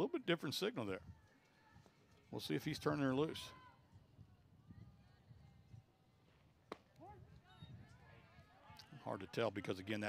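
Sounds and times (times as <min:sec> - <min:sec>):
ball hitting leather mitt: 0:06.7 - 0:06.9.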